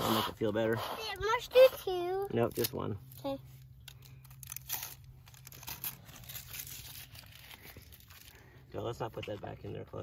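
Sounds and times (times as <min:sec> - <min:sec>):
bandage wrapper tearing: 0:02.5 - 0:08.6
paper backing crinkling: 0:03.2 - 0:09.6.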